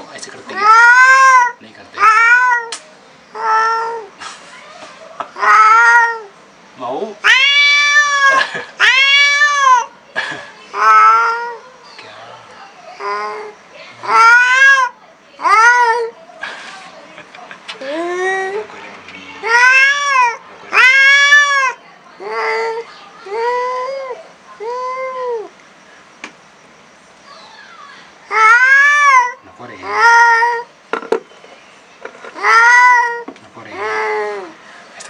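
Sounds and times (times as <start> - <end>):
cat yowling: 0.5 - 4.2, 5.4 - 6.4, 7.2 - 10.0, 10.7 - 11.7, 13.0 - 16.2, 19.4 - 25.5, 27.3 - 30.7, 32.3 - 34.6.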